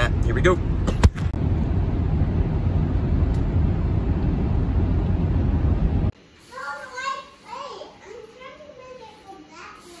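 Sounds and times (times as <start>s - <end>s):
car interior road rumble: 0.0s - 6.2s.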